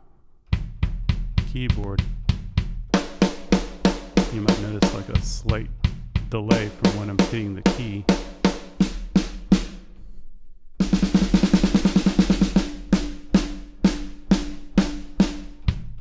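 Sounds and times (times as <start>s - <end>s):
drum hits: 0.5s - 9.9s, 10.8s - 16.0s
fast drum roll: 0.6s - 9.9s, 10.8s - 16.0s.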